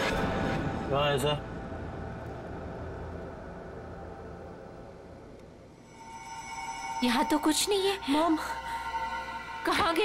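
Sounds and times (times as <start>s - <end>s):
low sustained drone: 1.6s - 10.0s.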